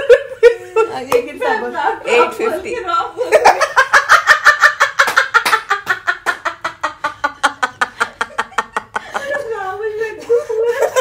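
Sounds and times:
women laughing hard: 0.0 - 1.0, 3.2 - 11.0.

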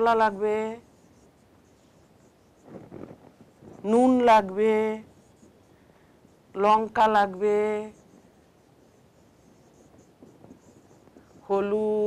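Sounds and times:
marker pen on whiteboard: 0.0 - 12.0.

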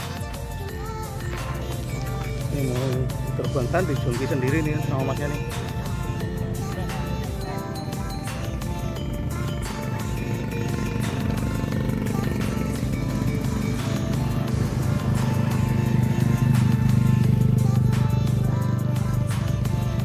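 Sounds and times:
background music: 0.0 - 20.0
motorcycle engines passing: 0.0 - 20.0.

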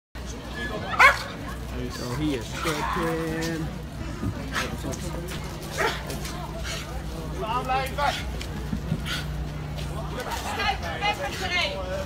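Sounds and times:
people talking: 0.2 - 12.0
dog barking: 1.0 - 1.3, 5.8 - 6.1.

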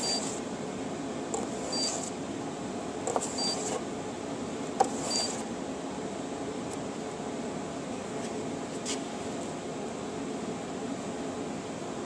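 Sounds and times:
robot buzzer short high beep: 0.0 - 0.3, 1.7 - 2.0.

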